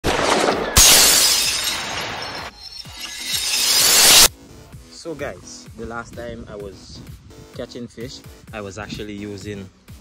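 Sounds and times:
crumbling debris: 0.0s - 4.3s
loud shattering crash: 0.0s - 4.3s.

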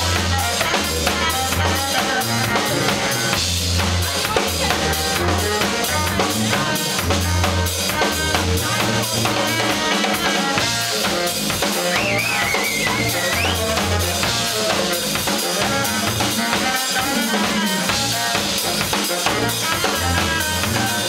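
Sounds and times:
drum kit playing: 0.0s - 21.0s
saxophone short lines: 10.5s - 21.0s.

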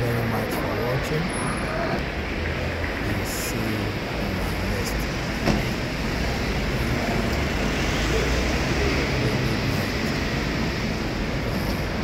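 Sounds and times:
road traffic: 0.0s - 12.0s.

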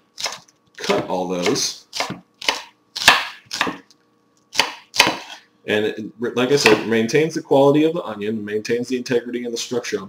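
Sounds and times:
knife chopping on wooden board: 0.2s - 3.8s, 4.5s - 5.4s, 6.6s - 6.9s.

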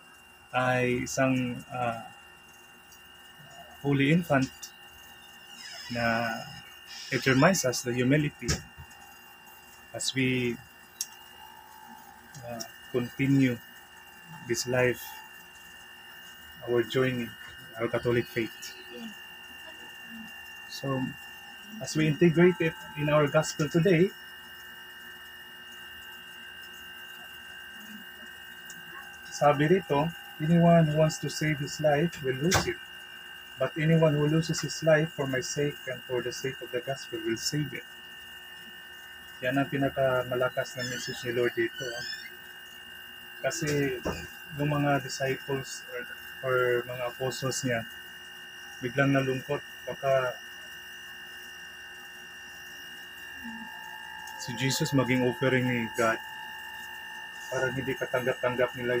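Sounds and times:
high-pitched electrical whine: 0.0s - 59.0s.

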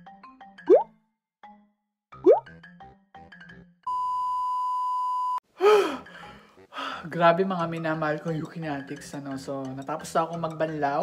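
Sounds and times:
short breath: 5.6s - 7.0s
person gasping: 5.6s - 7.1s.

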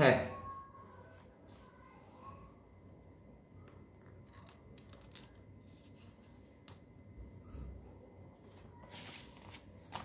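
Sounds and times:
paper rustling and ticking: 4.0s - 6.9s, 8.4s - 10.0s.

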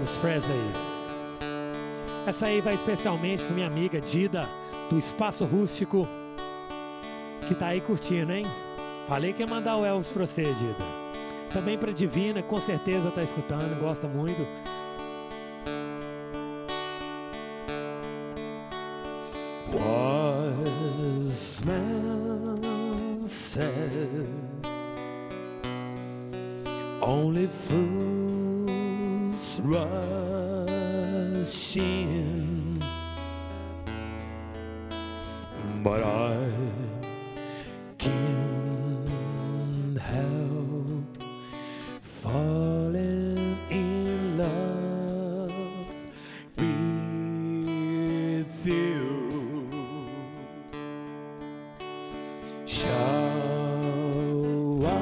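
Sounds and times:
man singing with vibrato: 0.0s - 1.1s, 2.0s - 6.2s, 7.4s - 14.7s, 19.4s - 24.8s, 26.8s - 33.1s, 35.4s - 50.8s, 52.4s - 55.0s
strummed acoustic guitar: 0.0s - 55.0s.

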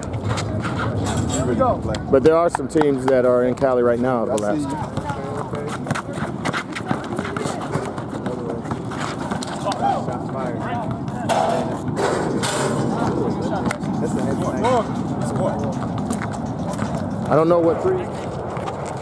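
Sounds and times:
basketball dribbling on asphalt: 4.7s - 9.4s, 10.2s - 12.0s, 13.4s - 17.5s.

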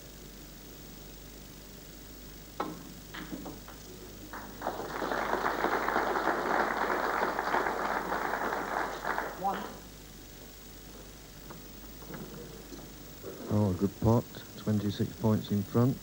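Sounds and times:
cue ball struck click: 2.6s - 4.6s
audience applause: 3.6s - 9.8s.

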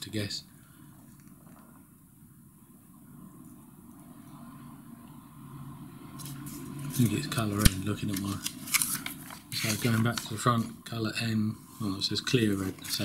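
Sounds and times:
faint low rumble: 0.2s - 13.0s.

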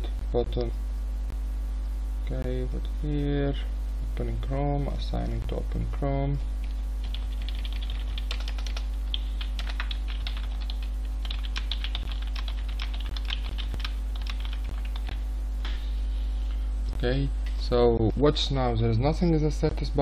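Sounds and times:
steady low hum: 0.0s - 20.0s
typing on computer keyboard: 7.0s - 15.2s.

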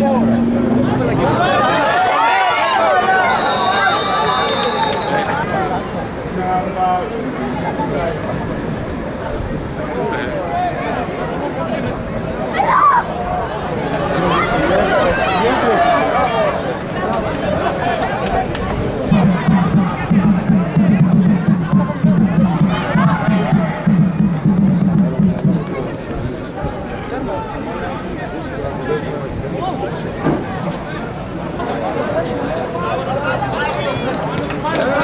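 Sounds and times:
people shouting and calling: 1.0s - 5.8s, 12.4s - 26.0s
low rapid pulsing sound: 19.1s - 26.0s.

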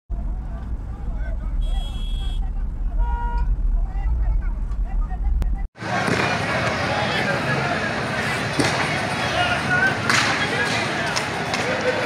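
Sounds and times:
heavy low rumble: 0.1s - 5.7s
scattered voices: 0.1s - 12.0s
short horn toots: 1.6s - 3.5s
sharp crack: 10.0s - 11.8s.

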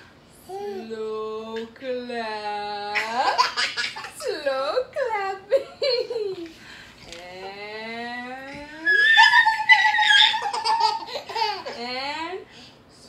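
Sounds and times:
child laughing: 8.9s - 11.8s.

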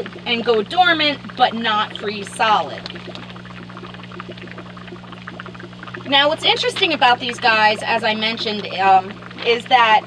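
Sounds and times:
steady low hum: 0.0s - 10.0s
water trickling: 0.0s - 10.0s.

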